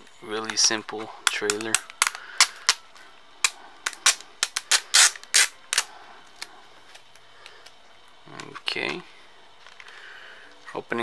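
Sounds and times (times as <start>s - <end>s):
plastic case clicks and crackles: 0.4s - 2.8s.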